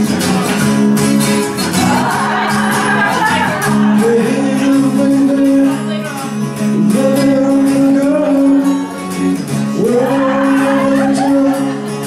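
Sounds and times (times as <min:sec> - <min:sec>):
acoustic guitar: 0:00.0 - 0:12.0
bass guitar: 0:00.0 - 0:12.0.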